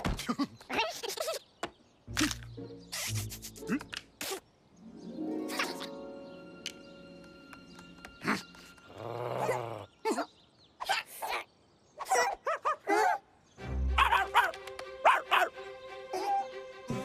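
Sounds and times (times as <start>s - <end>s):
cartoon dog barking and yipping: 12.0s - 13.3s, 14.0s - 15.5s.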